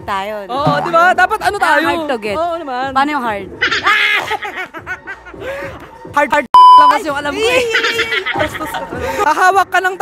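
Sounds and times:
woman laughing: 3.6 - 5.9, 7.4 - 9.4.

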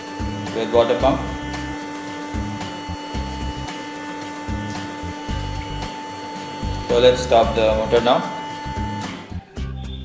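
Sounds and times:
water pump motor whine: 0.0 - 9.5
guitar music: 0.0 - 10.0.

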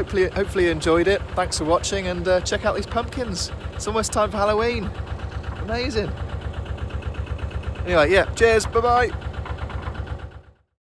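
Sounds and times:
diesel engine chugging: 0.0 - 10.8.

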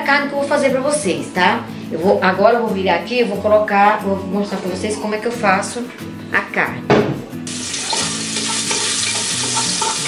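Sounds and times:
meat sizzling in a pot: 7.5 - 10.0.

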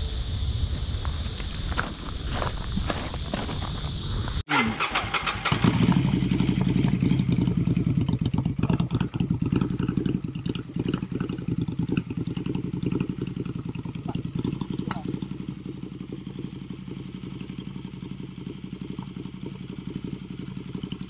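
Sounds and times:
wind and rustling: 0.0 - 4.4
motorcycle engine idling: 0.0 - 21.0.

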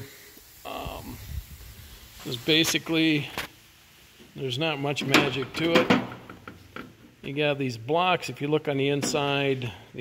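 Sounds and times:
person breathing: 0.0 - 0.4.

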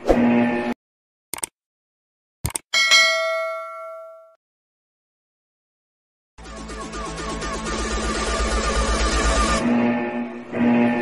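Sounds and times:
notification bell ding: 2.8 - 4.4.

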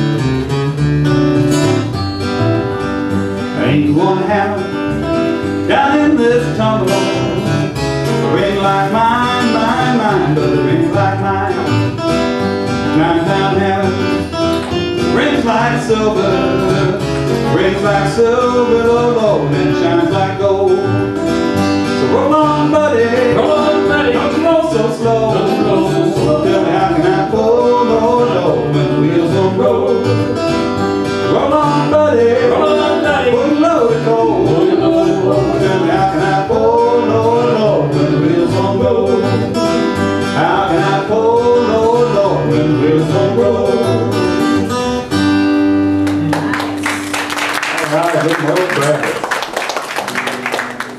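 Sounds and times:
bluegrass band playing: 0.0 - 50.9
strummed acoustic guitars: 0.0 - 50.9
upright bass: 0.0 - 50.9.

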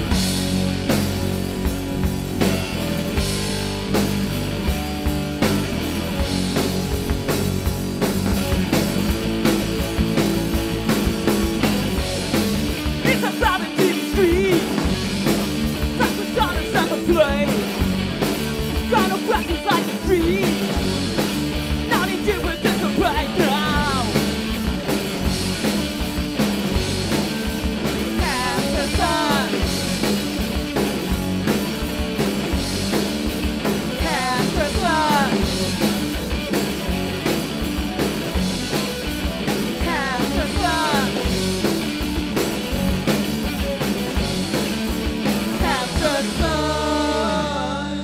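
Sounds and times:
live rock band playing: 0.0 - 48.0
person singing: 13.0 - 14.8, 16.0 - 17.7, 18.9 - 20.7, 21.9 - 24.2, 28.2 - 29.7, 34.0 - 35.5, 39.8 - 41.3, 45.5 - 48.0.

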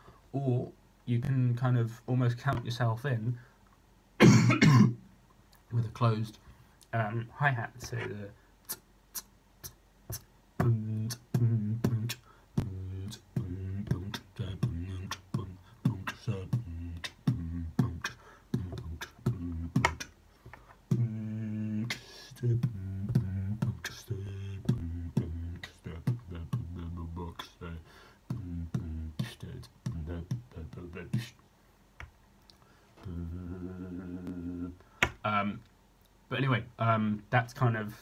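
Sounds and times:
man beatboxing: 7.8 - 20.2, 20.9 - 31.4, 33.0 - 35.6.

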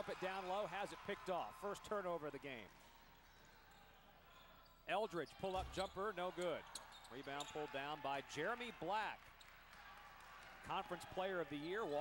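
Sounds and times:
basketball gym background noise: 0.0 - 12.0.

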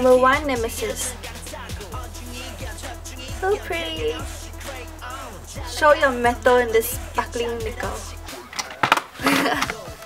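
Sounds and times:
quiet background music: 0.0 - 10.0
sharp knocks of objects: 8.6 - 9.2.

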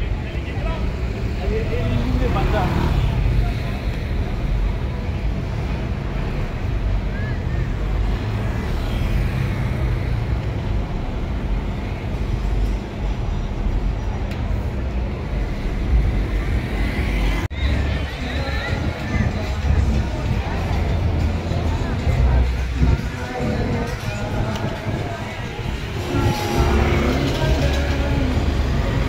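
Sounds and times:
moving vehicle rumble: 0.0 - 29.0
street traffic: 0.0 - 29.0
wind buffeting microphone: 18.4 - 29.0.

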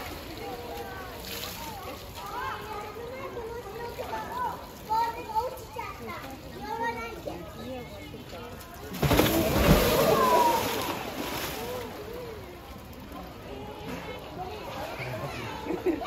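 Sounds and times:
children's voices: 0.0 - 16.0
indistinct chatter: 0.0 - 16.0.

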